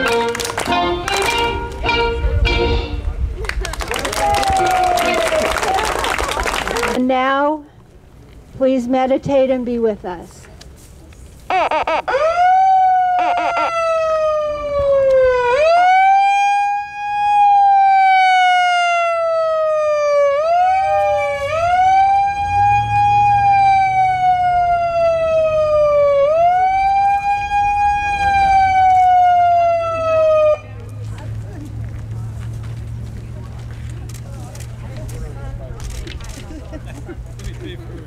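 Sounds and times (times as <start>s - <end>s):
megaphone siren wailing: 11.5s - 30.7s.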